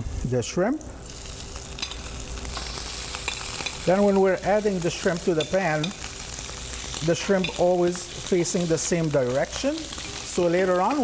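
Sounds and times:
butter sizzling in a pan: 1.0s - 11.0s.

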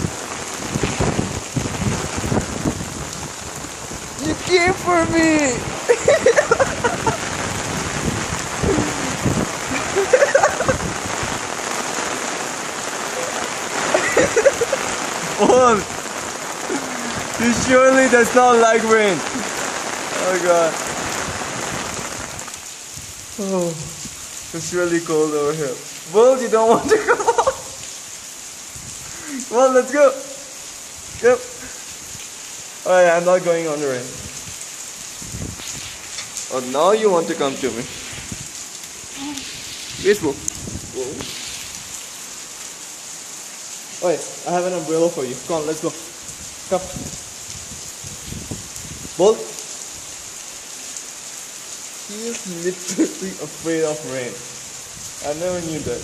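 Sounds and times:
rain pattering on umbrella: 0.0s - 56.0s.

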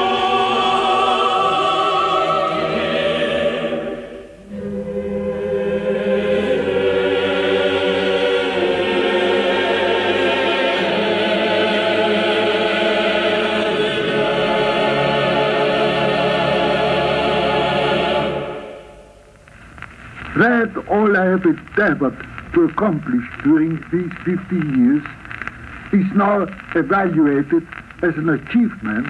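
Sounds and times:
choir singing sustained chords: 0.0s - 19.4s.

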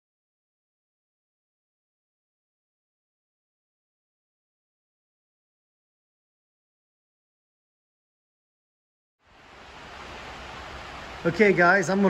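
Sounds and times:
rain on a tin roof: 9.2s - 12.0s.

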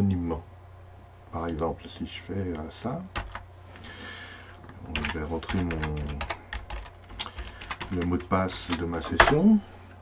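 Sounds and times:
computer keyboard keys clicking: 3.1s - 3.4s, 4.9s - 9.4s.

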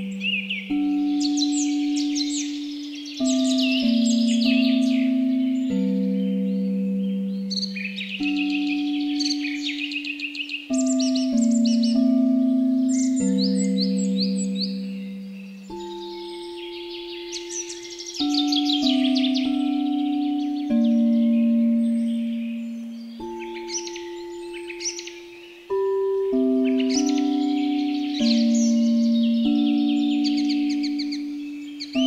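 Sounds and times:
singing bowls struck ringing: 0.0s - 32.0s
songbirds chirping: 0.0s - 32.0s.

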